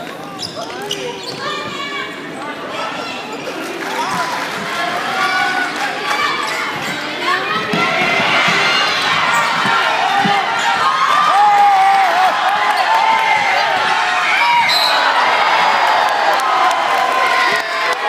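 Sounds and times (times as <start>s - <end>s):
crowd talking and shouting: 0.0s - 18.0s.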